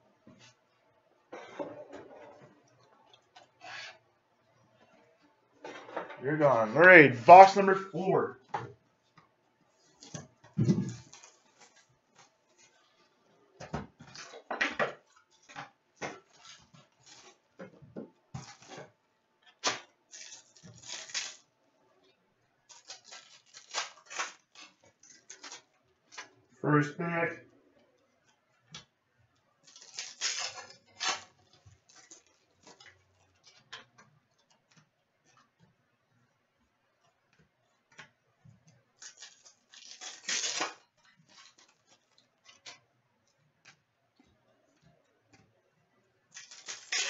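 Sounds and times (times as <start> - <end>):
foil pack tearing: 10.8 - 12.7, 18.4 - 18.8, 19.6 - 21.5, 22.7 - 26.3, 29.6 - 33.6, 39.0 - 42.8, 46.3 - 47.0
cards shuffling: 39.0 - 42.8, 46.4 - 47.0.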